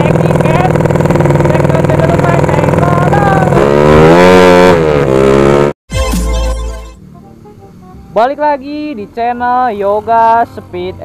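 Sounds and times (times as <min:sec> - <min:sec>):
motorcycle engine revving: 0:00.0 - 0:05.8.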